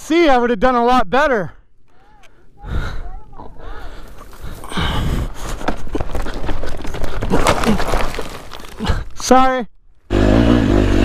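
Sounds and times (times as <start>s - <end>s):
rustling through dry brush: 2.4s - 9.2s
scraping on rocky ground: 3.2s - 10.1s
rocks clattering: 3.4s - 10.0s.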